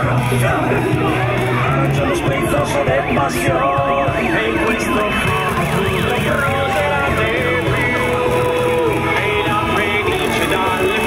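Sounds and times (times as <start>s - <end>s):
loud music over loudspeakers: 0.0s - 11.0s.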